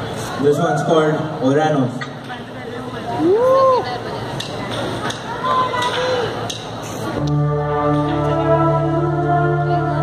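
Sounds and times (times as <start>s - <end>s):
crowd noise: 0.0s - 10.0s
synth pad chord with bass: 7.2s - 10.0s.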